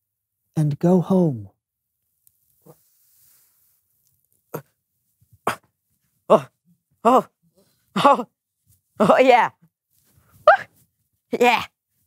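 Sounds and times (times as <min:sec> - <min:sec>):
young person yelping: 0:10.5 - 0:10.7.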